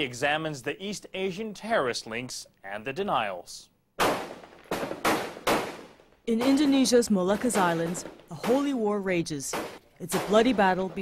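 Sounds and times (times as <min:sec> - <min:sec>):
gunshots echoing: 0:04.0 - 0:08.8, 0:09.5 - 0:11.0.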